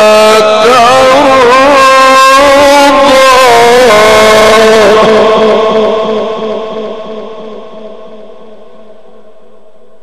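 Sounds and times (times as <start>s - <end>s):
man reciting melodically: 0.0s - 8.9s.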